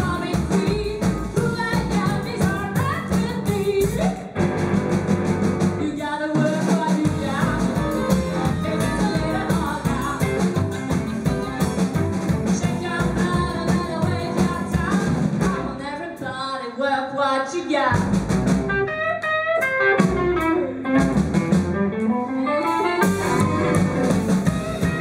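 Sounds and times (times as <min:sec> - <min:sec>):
woman singing: 0:00.0 - 0:04.4, 0:05.8 - 0:18.1
upright double bass: 0:00.0 - 0:05.9, 0:07.1 - 0:15.8, 0:17.9 - 0:18.9, 0:20.0 - 0:22.0, 0:23.0 - 0:25.0
drum kit: 0:00.0 - 0:15.8, 0:17.9 - 0:25.0
electric guitar: 0:03.0 - 0:05.9, 0:07.1 - 0:15.7, 0:18.1 - 0:25.0.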